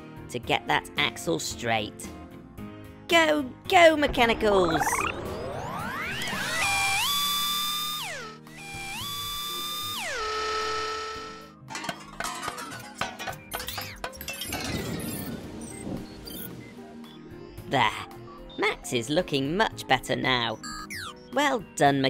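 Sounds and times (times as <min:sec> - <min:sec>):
rising synth whoops: 0:04.8 - 0:08.3
metallic clicks and clanks: 0:11.7 - 0:15.2.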